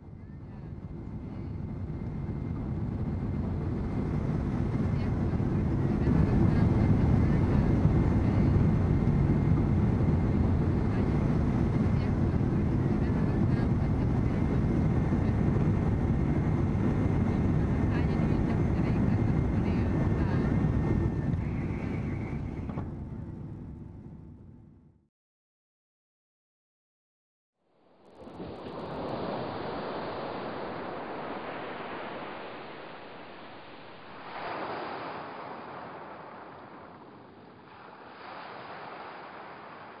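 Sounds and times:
airliner cabin rumble: 0.0s - 24.9s.

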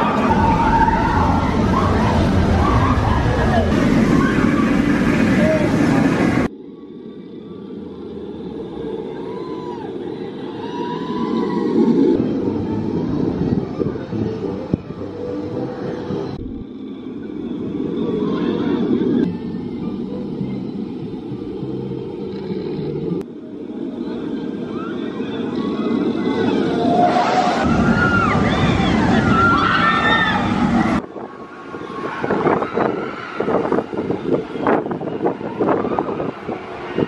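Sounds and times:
crowd chatter: 0.0s - 7.0s, 8.4s - 37.0s
roller coaster wheels rumbling: 0.0s - 37.0s.

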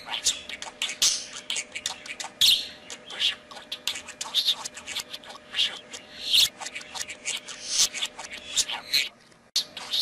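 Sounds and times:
budgerigar chattering: 0.0s - 10.0s.

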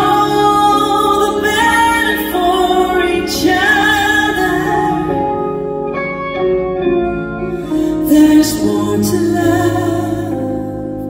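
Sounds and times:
live band playing ballad chords: 0.0s - 11.0s.

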